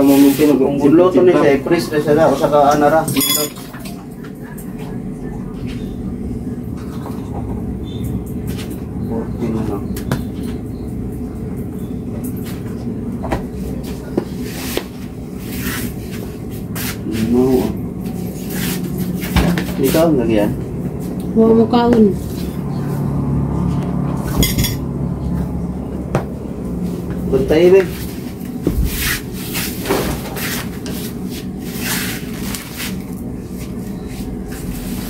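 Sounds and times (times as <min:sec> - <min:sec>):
steady low hum: 0:04.0 - 0:35.0.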